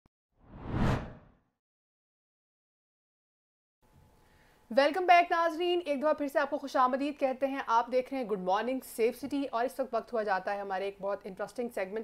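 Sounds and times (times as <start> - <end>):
whoosh sound effect: 0.4 - 1.3.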